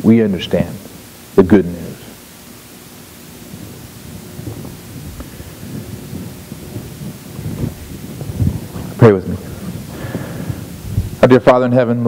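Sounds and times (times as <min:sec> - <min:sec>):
steady hiss: 0:00.0 - 0:12.0
low rumbling and rustling: 0:02.2 - 0:11.7.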